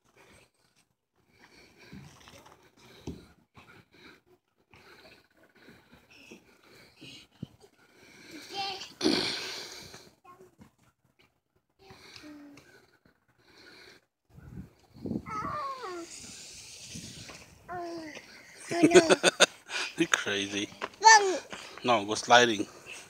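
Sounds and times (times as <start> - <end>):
toddler babbling and calling: 15.3 - 16.3, 17.7 - 19.2, 21.0 - 21.5.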